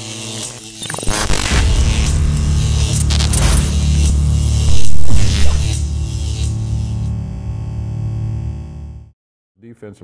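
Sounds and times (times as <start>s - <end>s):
static crackles: 0.9s - 2.2s, 2.9s - 3.8s, 4.6s - 5.8s
sudden loud surge: 1.2s - 7.0s
deep humming drone: 1.2s - 9.1s.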